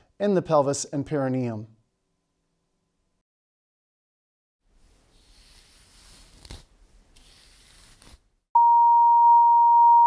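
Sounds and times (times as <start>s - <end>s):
loud steady electronic beep: 8.6s - 10.0s.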